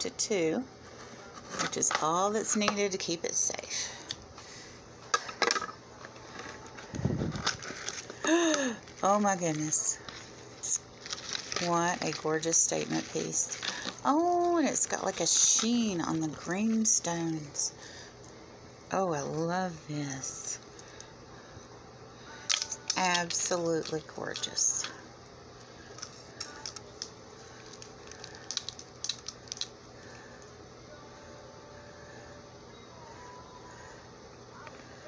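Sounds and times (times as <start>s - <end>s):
woman's voice: 0.0s - 0.7s, 1.5s - 4.1s, 8.2s - 10.9s, 11.5s - 18.0s, 18.9s - 20.6s, 22.3s - 25.0s
low room hiss: 0.0s - 35.0s
unwrapping package and bubble wrap: 5.9s - 17.9s, 22.3s - 25.0s, 25.8s - 30.5s.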